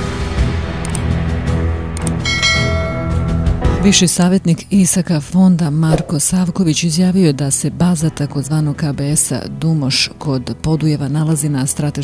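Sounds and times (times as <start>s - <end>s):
background music: 0.0s - 12.0s
click: 0.8s - 1.1s, 2.0s - 2.2s.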